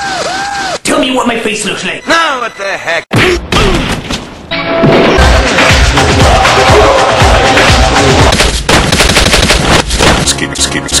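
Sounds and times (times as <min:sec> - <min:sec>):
music: 0:04.5 - 0:08.3, 0:10.2 - 0:11.0
machine-gun fire sound effect: 0:08.3 - 0:10.2.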